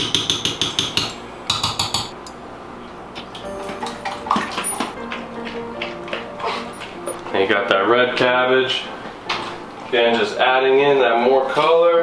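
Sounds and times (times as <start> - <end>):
background music with held notes: 3.4 - 12.0.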